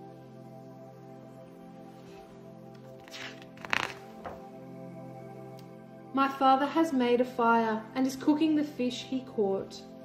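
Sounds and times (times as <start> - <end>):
soft instrumental music: 0.0 - 10.0
book page turning: 2.0 - 4.5.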